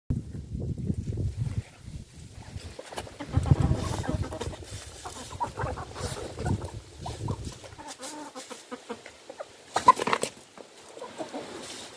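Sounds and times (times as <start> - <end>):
chickens clucking: 2.4 - 11.9.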